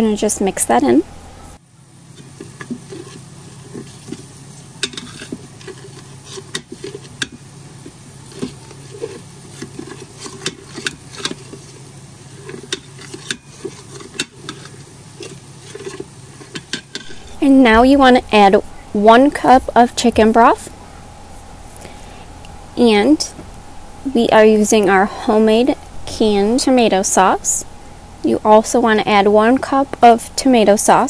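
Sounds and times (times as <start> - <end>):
utensil scraping a saucepan: 2.1 - 20.7.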